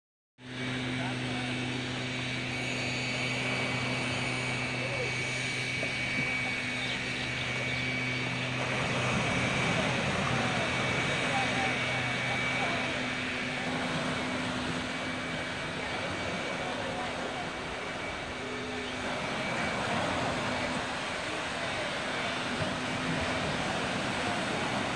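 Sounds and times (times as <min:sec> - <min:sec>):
distant voices: 0:00.4 - 0:24.9
low mechanical hum: 0:00.4 - 0:24.9
surf washing on shore: 0:08.0 - 0:24.9.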